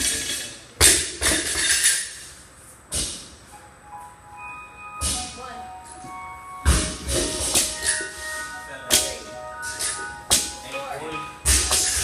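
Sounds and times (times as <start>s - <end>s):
background music: 3.6s - 12.0s.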